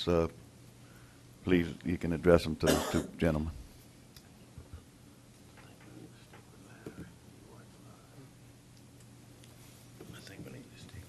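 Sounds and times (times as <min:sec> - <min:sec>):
steady low hum: 0:00.0 - 0:11.0
men whispering: 0:05.5 - 0:08.6, 0:10.0 - 0:11.0.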